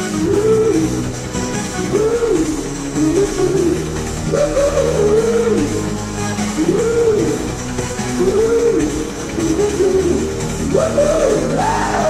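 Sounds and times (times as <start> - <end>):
electro-industrial rock music: 0.0 - 12.0
sliding lead synth line: 0.0 - 12.0
sustained bass and synth tones: 0.0 - 12.0.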